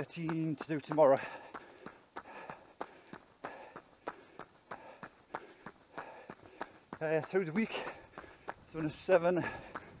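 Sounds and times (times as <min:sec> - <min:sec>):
running footsteps on tarmac: 0:00.0 - 0:10.0.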